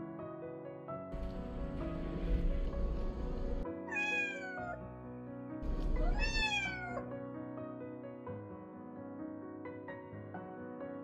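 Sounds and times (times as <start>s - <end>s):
cat meowing: 3.9s - 4.8s, 5.6s - 7.1s.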